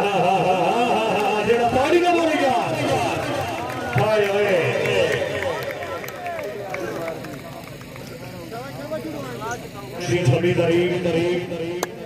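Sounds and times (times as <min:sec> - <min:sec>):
loudspeaker commentary: 0:00.0 - 0:12.0
men talking and calling: 0:00.0 - 0:12.0.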